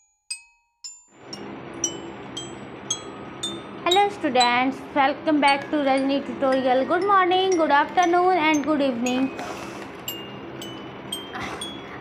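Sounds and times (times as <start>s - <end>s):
chimes ringing: 0.8s - 4.8s, 5.4s - 12.0s.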